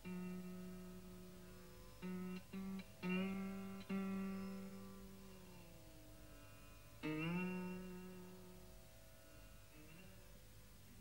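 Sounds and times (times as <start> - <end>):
strummed acoustic guitar chord: 0.0 - 10.2
low steady mains hum: 0.0 - 11.0.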